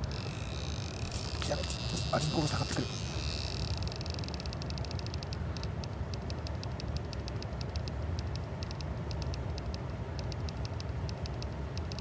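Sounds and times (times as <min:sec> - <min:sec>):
insects chirping and trilling: 0:00.0 - 0:05.3
low steady rumble: 0:00.0 - 0:12.0.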